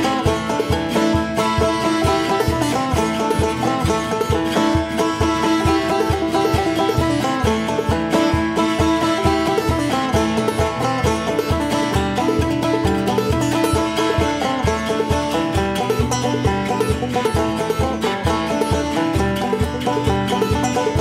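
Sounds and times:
string band music with banjo: 0.0 - 21.0.

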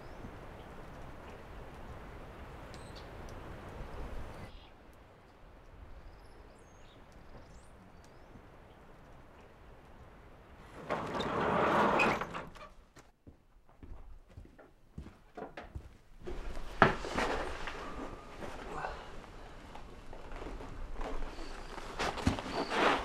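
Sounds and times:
rustling in straw: 16.4 - 23.0.

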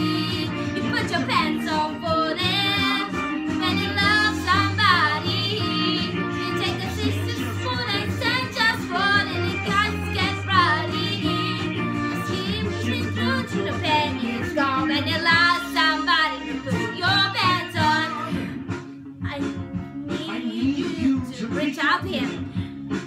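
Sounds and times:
woman singing into microphone: 0.0 - 18.6, 19.2 - 22.6
instrumental backing track: 0.0 - 23.0.

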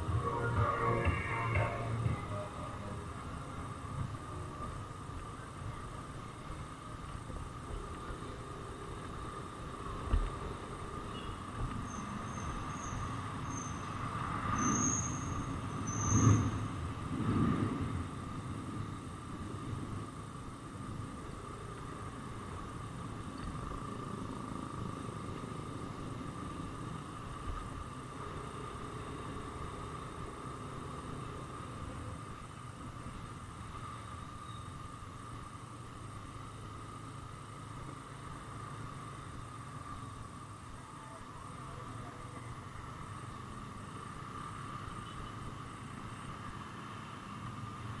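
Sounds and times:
road noise: 0.0 - 48.0.

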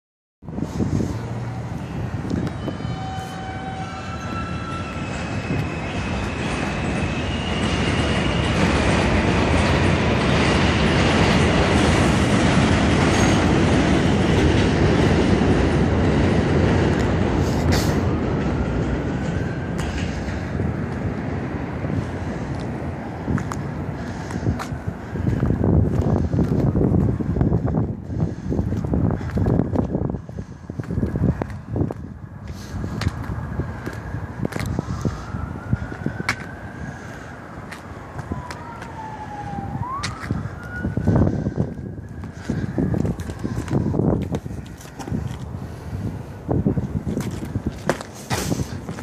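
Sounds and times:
elevated train rumbling: 0.4 - 49.0
train wheels squealing: 1.8 - 11.4, 12.9 - 13.8.

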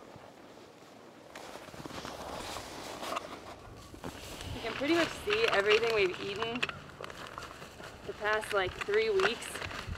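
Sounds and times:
footsteps crunching in snow: 0.0 - 9.9
person speaking: 4.5 - 6.7, 8.0 - 9.8.

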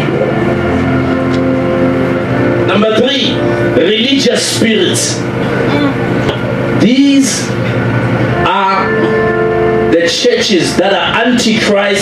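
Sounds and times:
keyboard sustained chord: 0.0 - 12.0.

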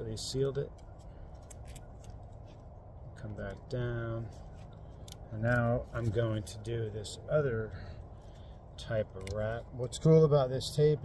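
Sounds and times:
low background noise: 0.0 - 11.0
plastic tape crinkling: 0.4 - 2.7
soft tape clicks: 8.9 - 9.6.

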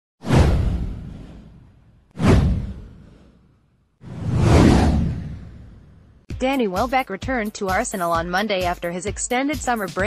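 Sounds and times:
whoosh with deep rumble: 0.2 - 6.3.

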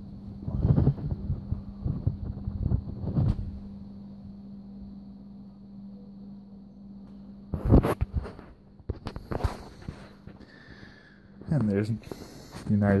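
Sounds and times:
steady low hum: 0.0 - 13.0
muffled low thumps: 0.4 - 3.8.

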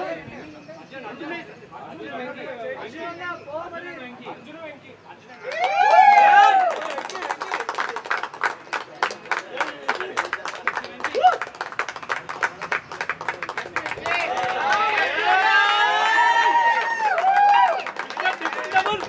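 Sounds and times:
voices shouting and cheering: 4.7 - 7.7, 9.4 - 19.0
group clapping hands: 5.5 - 19.0.

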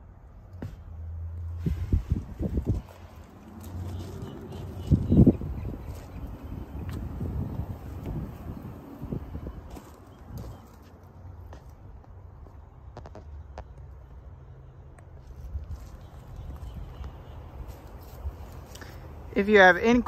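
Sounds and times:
wind rumble on microphone: 1.5 - 10.8
footsteps on gravel: 2.1 - 13.7.

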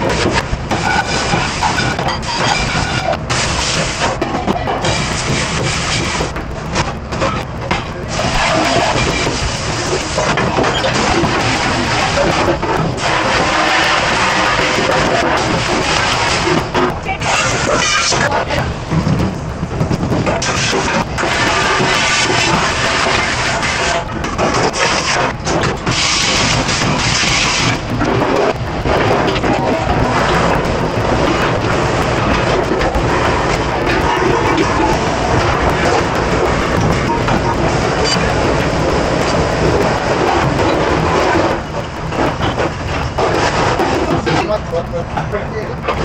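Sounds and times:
sprayer blasting water into pot: 0.0 - 6.3, 8.1 - 18.5, 20.1 - 42.7
water spray hissing on metal: 0.1 - 4.0, 8.1 - 16.5, 25.9 - 27.9.

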